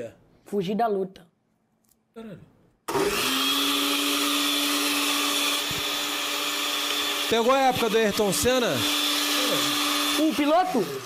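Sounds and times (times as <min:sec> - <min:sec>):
blender running at high speed: 0:02.9 - 0:11.0.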